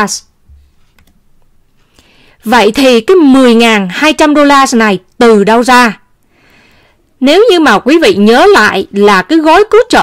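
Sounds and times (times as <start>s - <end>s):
woman speaking: 0.0s - 0.3s, 2.4s - 6.1s, 7.2s - 10.0s
faint keyboard clicks: 0.9s - 1.2s.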